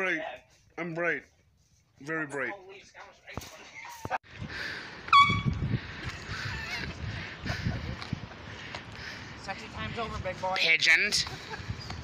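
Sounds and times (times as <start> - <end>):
high-pitched car horn chirp: 5.1 - 5.6.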